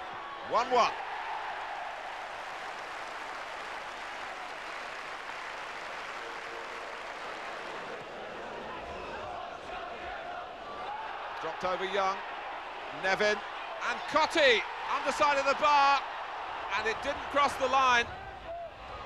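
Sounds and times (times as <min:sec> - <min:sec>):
stadium crowd cheering and applauding: 0:00.0 - 0:19.0.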